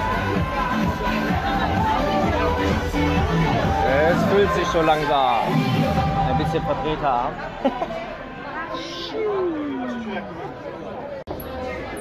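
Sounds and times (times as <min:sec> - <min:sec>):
background chatter of voices: 0:00.0 - 0:12.0.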